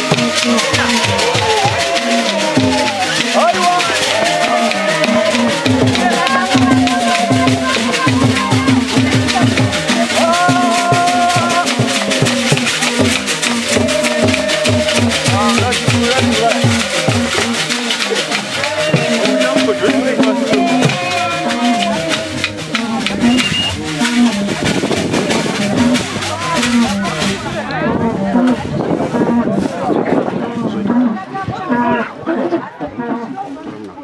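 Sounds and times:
shaker rattles: 0:00.0 - 0:30.4
drums beating fast rhythm: 0:00.0 - 0:31.7
group singing and chanting: 0:00.0 - 0:34.0.

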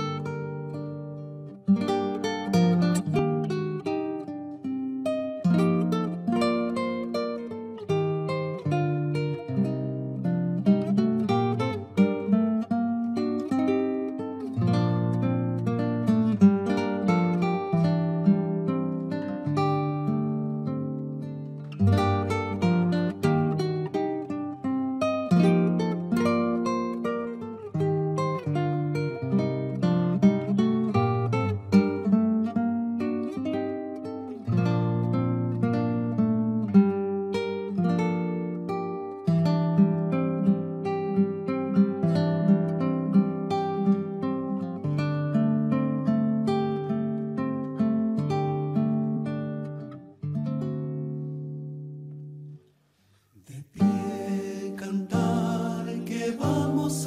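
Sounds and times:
classical guitar fingerstyle: 0:00.0 - 0:57.0.

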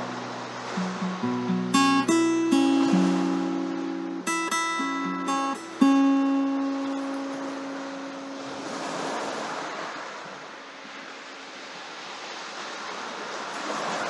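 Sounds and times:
guitar chord ringing: 0:00.0 - 0:09.6
surf on pebble beach: 0:00.0 - 0:14.0.

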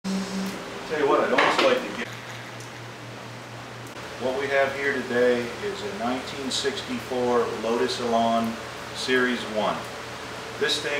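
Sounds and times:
low hum: 0:00.0 - 0:01.2.

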